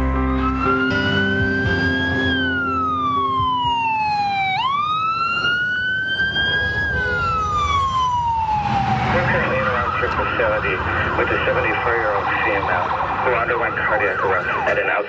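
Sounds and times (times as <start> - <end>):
ambulance siren wailing: 0.0 - 15.0
road noise rumble: 0.0 - 15.0.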